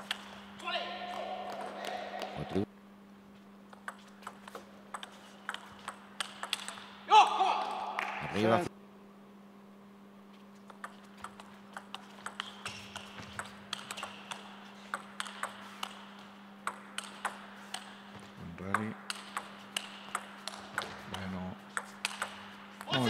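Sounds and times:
steady low hum: 0.0 - 23.0
table tennis ball clicking: 3.7 - 6.9, 10.7 - 18.0, 18.7 - 22.9.

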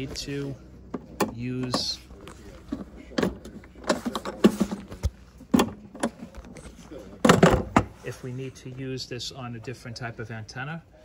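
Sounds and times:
plastic case lid clunking shut: 7.2 - 8.0.

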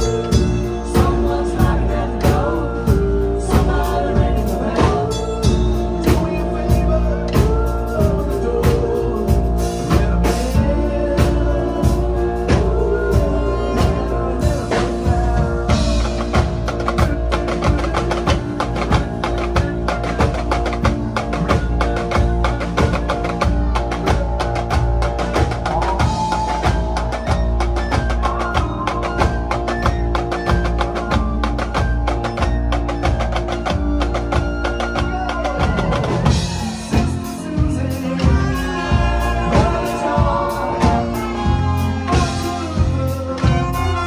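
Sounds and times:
rapid snare drum strokes: 0.0 - 44.0
rock band playing: 0.0 - 44.0.

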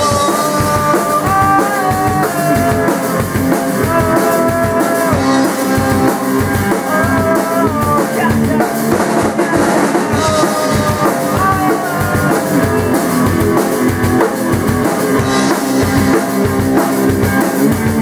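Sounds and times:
drum kit beat: 0.0 - 18.0
electric guitar melody: 0.0 - 18.0.

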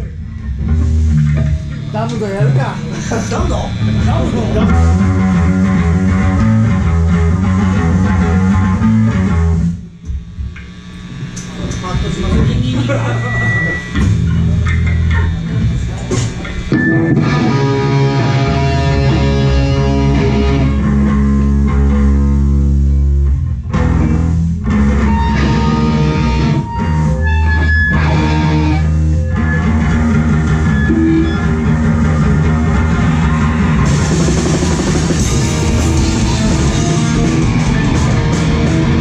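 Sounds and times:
live rock band playing: 0.0 - 9.9, 13.1 - 39.0.

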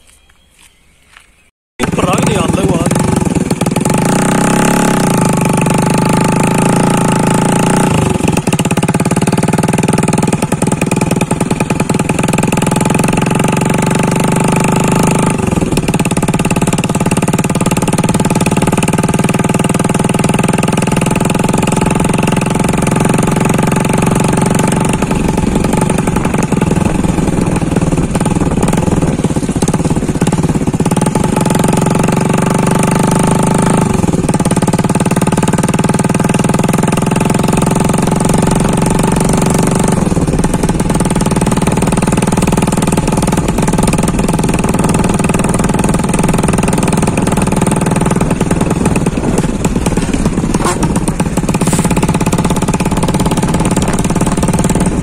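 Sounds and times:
motorcycle engine running: 1.8 - 55.0.

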